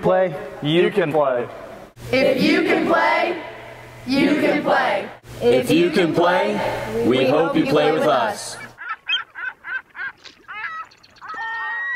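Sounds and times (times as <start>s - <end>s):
gull calling: 8.6s - 11.9s.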